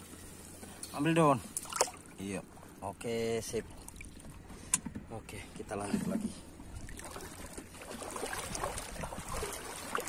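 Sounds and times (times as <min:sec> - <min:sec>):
seawater sloshing and trickling: 0:00.0 - 0:10.0.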